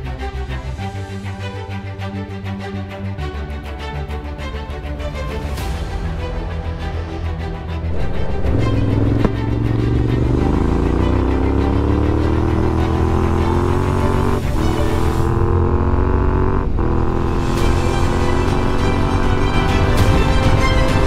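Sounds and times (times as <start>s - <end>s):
motorcycle engine accelerating: 7.9s - 20.4s.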